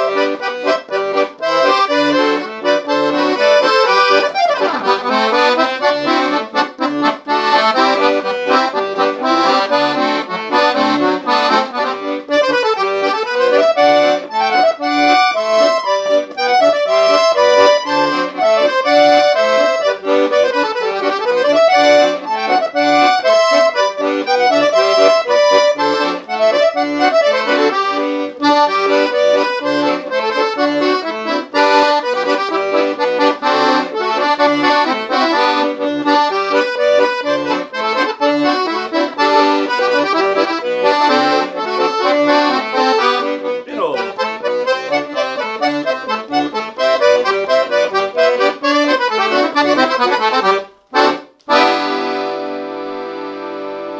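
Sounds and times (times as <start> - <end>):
accordion playing slow polka: 0.0 - 53.9.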